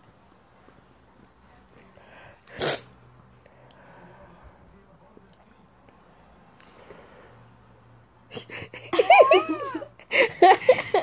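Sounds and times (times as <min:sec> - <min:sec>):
sharp sneeze: 0:02.5 - 0:03.0.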